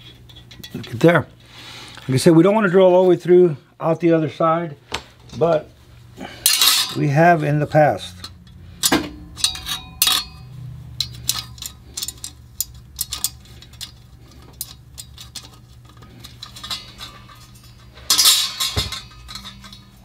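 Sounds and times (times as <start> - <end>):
metal scraping and rattling: 6.2 - 7.4, 8.0 - 20.0.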